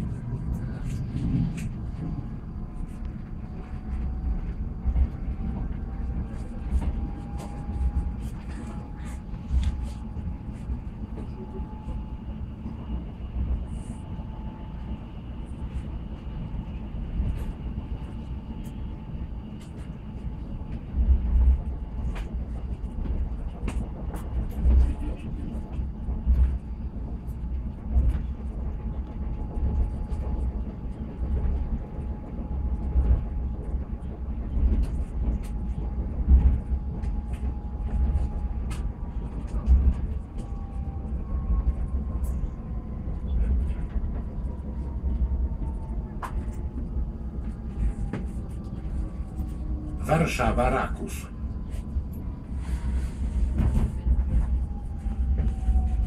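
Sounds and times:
rail joint clicks and knocks: 0.0s - 12.8s, 19.4s - 52.4s
train wheels rumbling: 0.0s - 56.0s.

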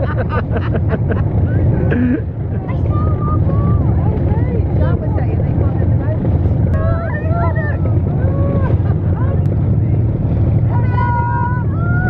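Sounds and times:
passengers chattering: 0.0s - 11.6s
boat motor rumbling: 0.0s - 12.0s.

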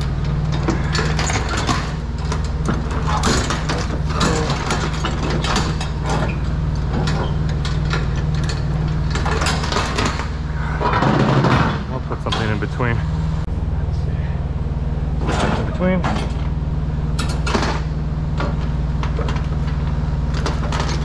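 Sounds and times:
low hum: 0.0s - 21.0s
steel chains clinking: 0.5s - 6.4s.

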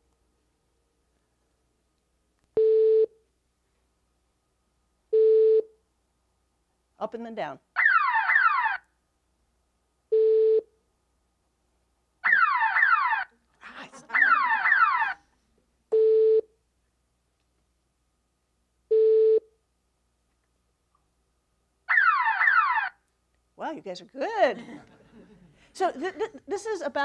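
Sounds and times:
falling siren wail: 7.8s - 8.8s, 12.2s - 13.3s, 14.1s - 15.2s, 21.9s - 22.9s.

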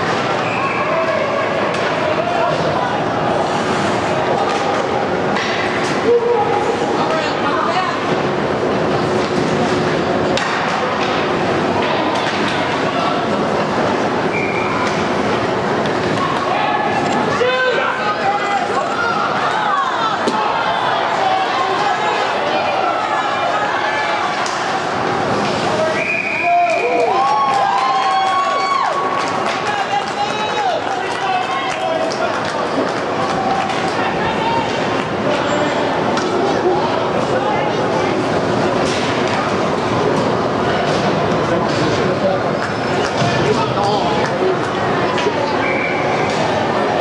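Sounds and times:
crowd voices in rink: 0.0s - 47.0s.

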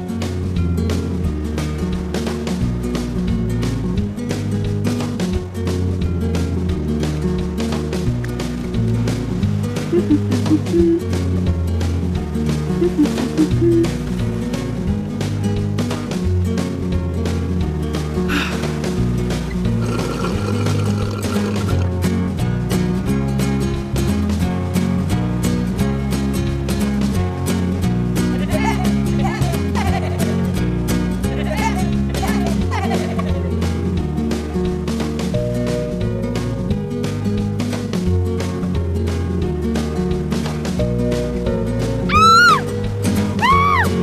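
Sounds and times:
background music with steady beat: 0.0s - 44.0s
high-pitched vocal sound effect: 10.0s - 11.0s.

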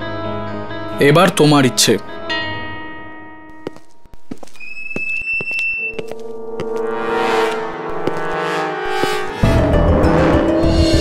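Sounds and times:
orchestral chords: 6.2s - 11.0s.

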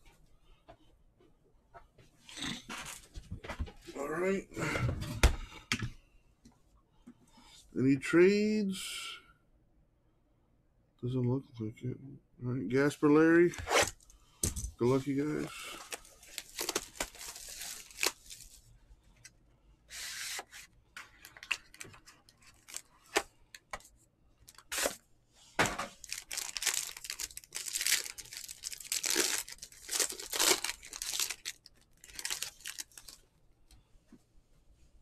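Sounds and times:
foil wrappers tearing and crinkling: 15.6s - 18.6s, 21.3s - 23.2s, 24.5s - 25.0s, 26.0s - 33.2s.

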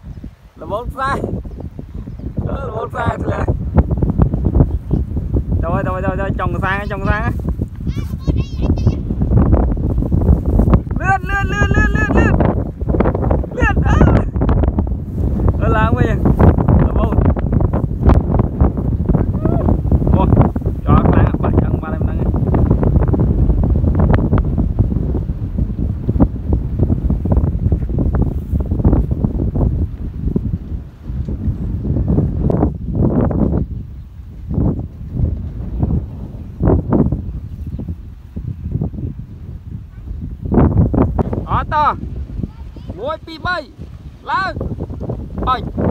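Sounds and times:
wind buffeting microphone: 0.0s - 45.9s.

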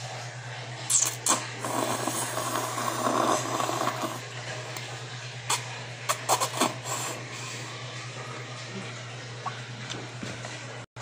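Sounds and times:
child slurping noodles: 0.9s - 4.2s, 5.5s - 7.2s.

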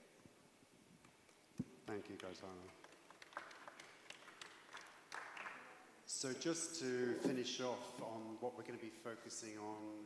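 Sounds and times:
sparse hand clapping: 1.0s - 5.7s.

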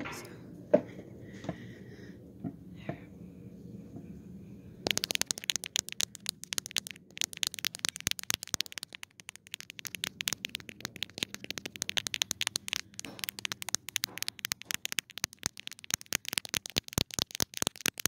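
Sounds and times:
fingers tapping phone lens: 4.8s - 18.0s.

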